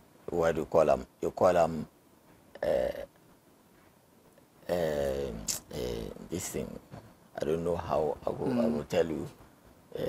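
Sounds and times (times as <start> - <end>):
man saying uh: 2.6 - 3.1, 4.6 - 6.8.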